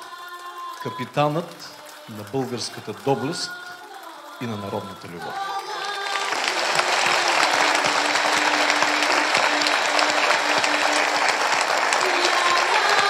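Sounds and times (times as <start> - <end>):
audience applauding: 0.0 - 13.0.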